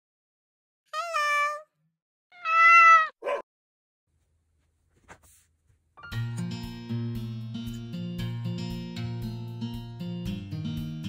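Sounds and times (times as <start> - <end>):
cat meowing: 0.9 - 1.7, 2.3 - 3.4.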